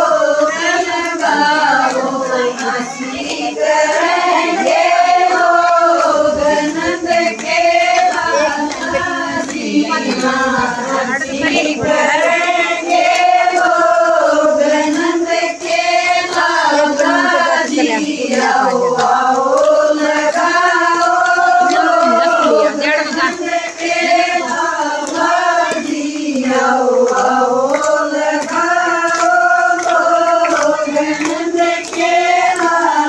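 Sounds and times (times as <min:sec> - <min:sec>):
women singing devotional song: 0:00.0 - 0:33.0.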